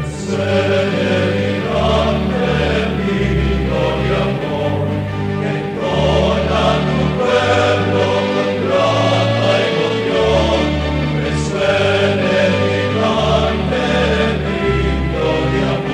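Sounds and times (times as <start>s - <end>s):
choir singing a hymn: 0.0s - 15.9s.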